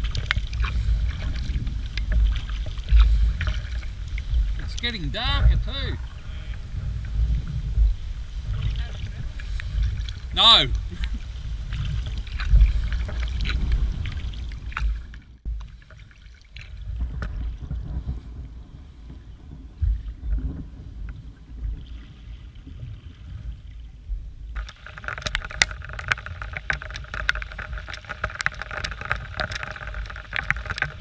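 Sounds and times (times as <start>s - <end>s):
wind on microphone: 0.0s - 15.7s, 16.6s - 31.0s
paddle strokes in water: 0.0s - 31.0s.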